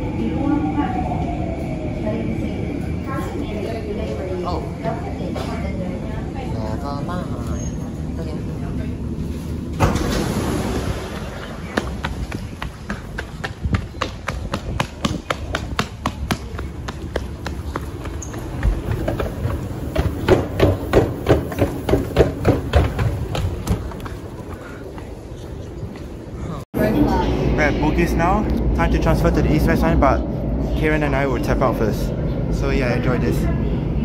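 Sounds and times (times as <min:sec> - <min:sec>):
train rumble: 0:00.0 - 0:34.0
running footsteps on stone floor: 0:11.7 - 0:26.2.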